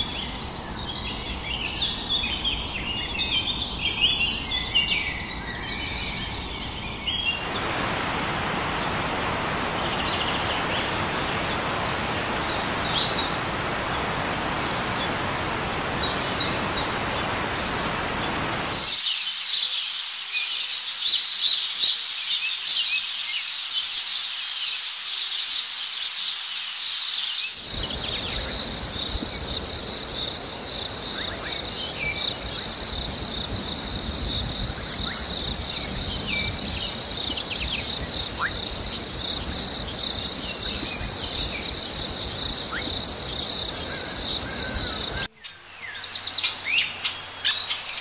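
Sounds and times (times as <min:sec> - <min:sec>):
high insect drone: 0:00.0 - 0:20.4, 0:23.2 - 0:48.0
forest birds chirping: 0:00.0 - 0:48.0.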